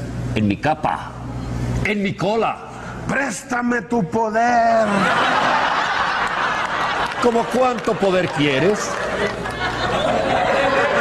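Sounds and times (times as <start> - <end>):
audience laughing: 4.8 - 11.0.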